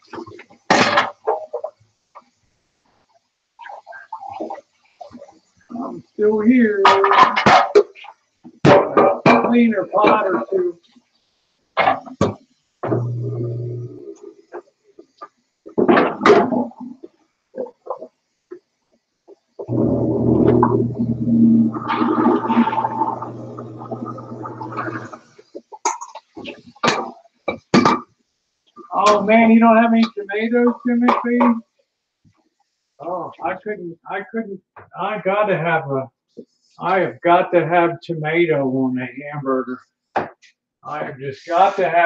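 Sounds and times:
indistinct voice: 19.7s - 25.2s.

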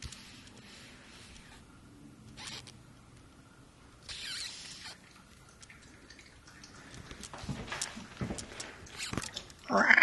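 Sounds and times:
raccoon squeaking: 2.4s - 2.7s, 4.1s - 5.0s.

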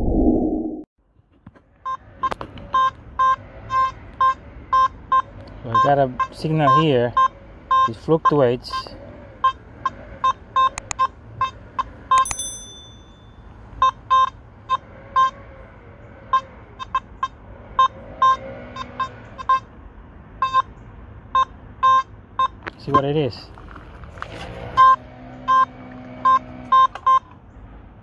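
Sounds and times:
metal detector beeps: 1.8s - 9.6s, 10.2s - 15.4s, 16.3s - 19.7s, 20.4s - 20.7s, 21.4s - 23.0s, 24.8s - 27.3s
high-pitched beep: 10.6s - 14.3s.

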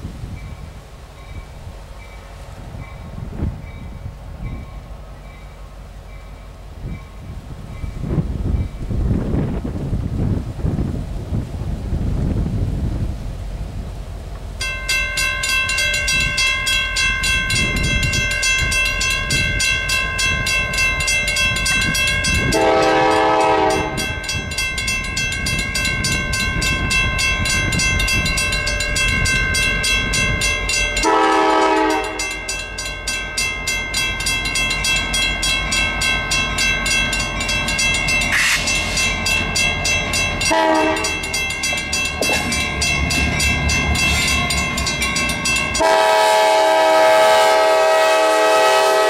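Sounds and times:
train rumble: 0.0s - 49.0s
crossing bell ringing: 14.5s - 49.0s
locomotive horn blasts: 22.2s - 24.3s, 31.0s - 32.5s, 38.3s - 39.0s, 40.4s - 41.4s, 45.6s - 49.0s.

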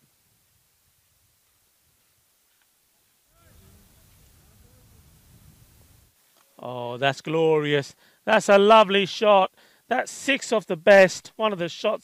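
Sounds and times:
low outdoor rumble: 3.2s - 6.2s.

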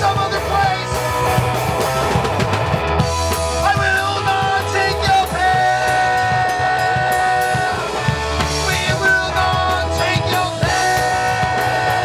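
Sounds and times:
electric guitar long held note: 0.0s - 12.0s
punk rock band playing: 0.0s - 12.0s.

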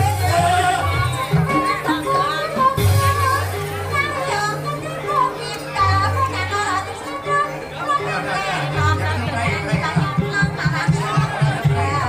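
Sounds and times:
crowd voices: 0.0s - 12.0s
gamelan music: 0.0s - 12.0s.

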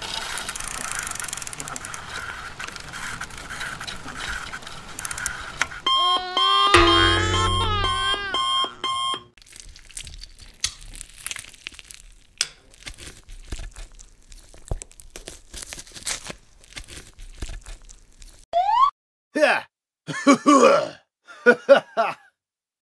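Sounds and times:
faint clicks and crackles: 0.0s - 6.8s
cartoon ringing effect: 5.9s - 9.2s.

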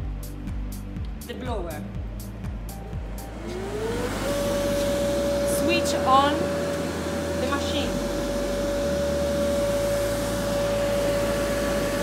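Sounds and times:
air blower motor whine: 2.8s - 12.0s.

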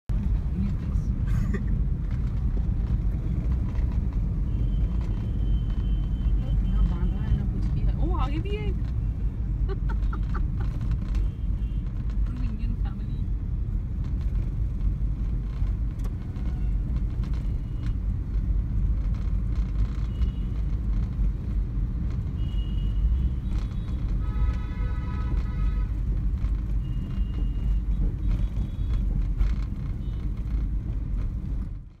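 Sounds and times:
vehicle road and wind rumble: 0.1s - 32.0s.

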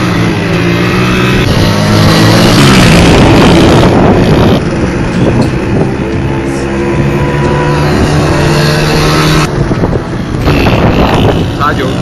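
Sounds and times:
motorcycle engine running: 0.0s - 12.0s
wind rushing over microphone: 0.0s - 12.0s.

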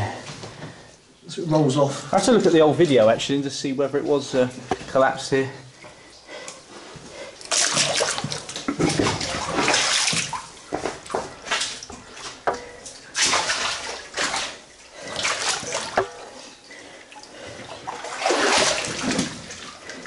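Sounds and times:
person wading through water: 7.3s - 20.0s.

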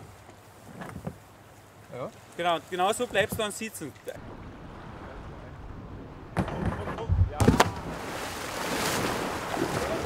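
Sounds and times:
kayak splashing into water: 6.3s - 10.0s
rushing river water: 7.6s - 10.0s.

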